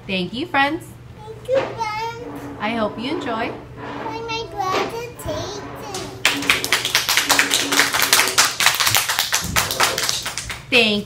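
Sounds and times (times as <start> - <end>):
people clapping: 5.9 - 10.7.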